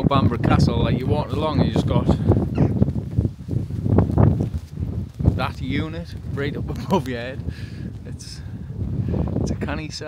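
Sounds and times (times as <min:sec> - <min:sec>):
clothing rustling on microphone: 0:00.9 - 0:09.5
footsteps on a path: 0:01.4 - 0:09.4.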